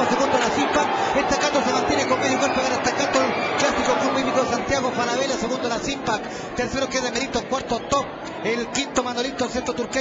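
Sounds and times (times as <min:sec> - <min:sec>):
race commentator speaking: 0:00.0 - 0:10.0.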